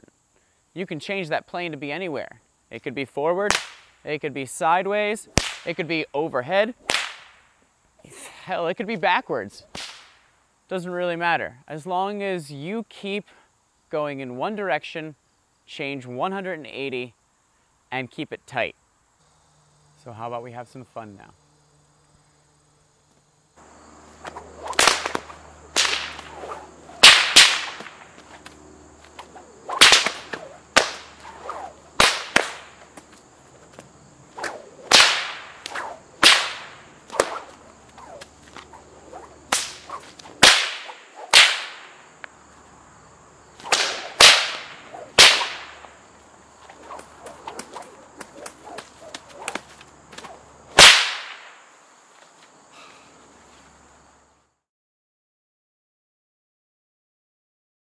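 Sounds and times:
bullwhip cracking: 3.5s - 4.0s, 5.3s - 5.8s, 6.8s - 7.4s, 9.6s - 10.2s, 24.1s - 42.1s, 43.6s - 46.0s, 46.6s - 51.6s.

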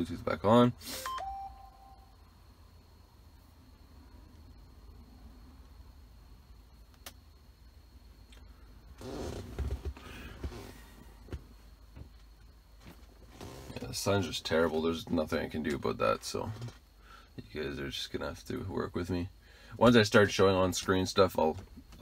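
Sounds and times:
quiet cabin hum: 0.0s - 22.0s
short electronic beep: 0.9s - 2.1s.

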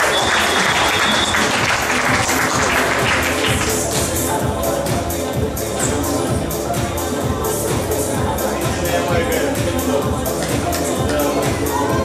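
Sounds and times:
spectators applauding: 0.0s - 4.1s
background music: 0.0s - 12.0s.

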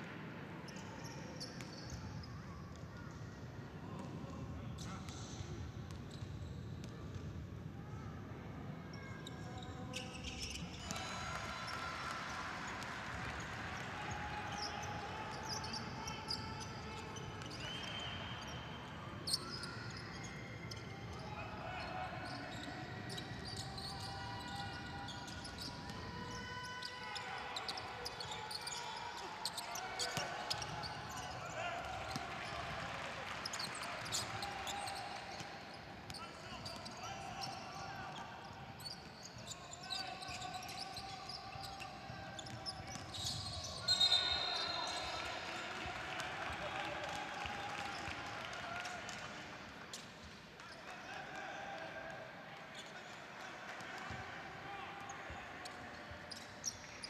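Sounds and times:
low noise of the hall: 0.0s - 57.0s
players and coaches calling out: 8.9s - 57.0s.

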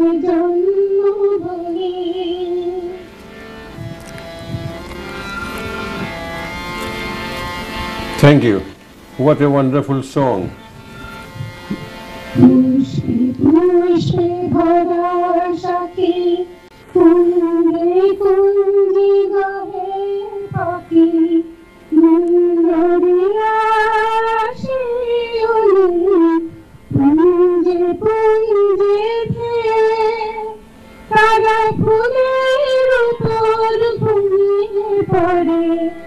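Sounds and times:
woman singing into a microphone: 0.0s - 3.2s, 12.3s - 36.0s.

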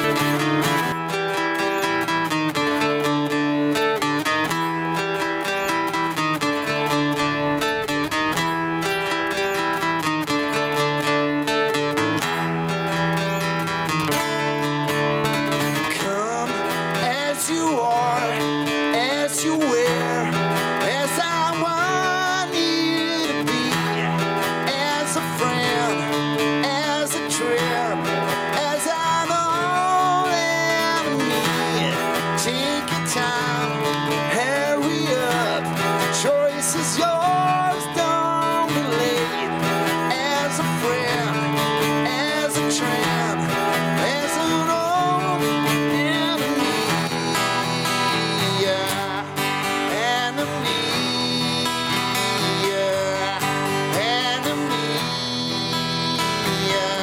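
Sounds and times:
acoustic guitar strumming chords: 0.0s - 57.0s
man singing: 0.0s - 57.0s.

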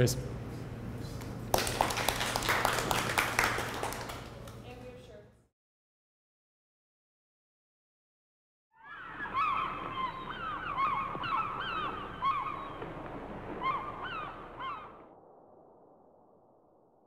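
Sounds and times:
seagulls calling: 8.8s - 15.1s.

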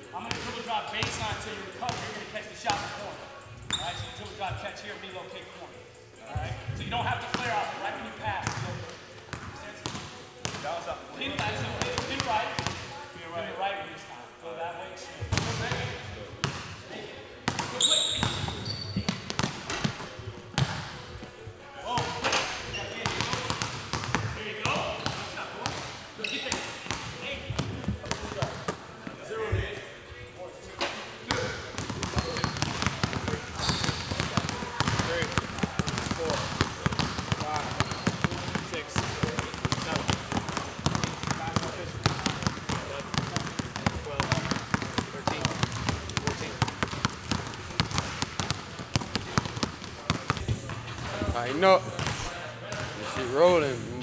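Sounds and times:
basketballs bouncing on hardwood floor: 17.5s - 20.8s, 23.0s - 25.9s, 31.3s - 52.9s.

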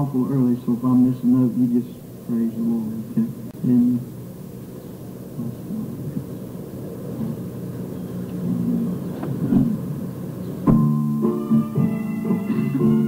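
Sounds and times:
vinyl record rumble: 0.0s - 13.0s
acoustic guitar: 10.6s - 13.0s.

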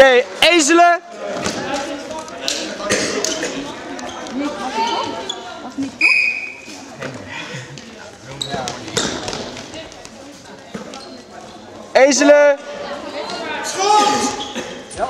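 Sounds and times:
ball bouncing on hall floor: 7.8s - 11.1s.

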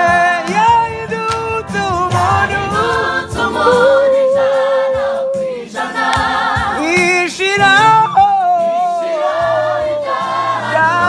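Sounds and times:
gospel group singing in harmony: 0.0s - 11.0s.

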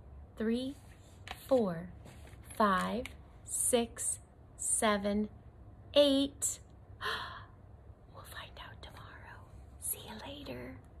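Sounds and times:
soft whispering: 7.0s - 11.0s.

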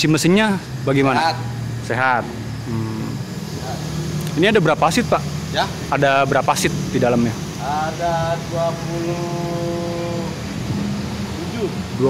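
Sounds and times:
man's drawn-out hesitation sound: 0.0s - 10.6s, 11.3s - 12.0s
steady low hum: 0.0s - 12.0s.

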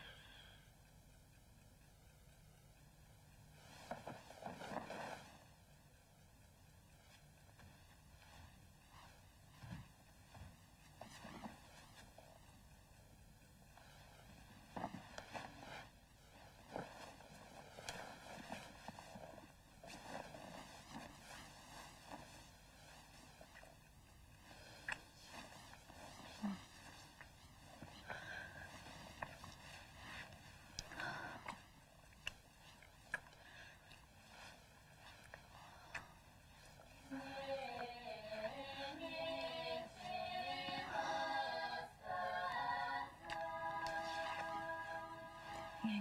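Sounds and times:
rustling of bedclothes: 2.8s - 46.0s.

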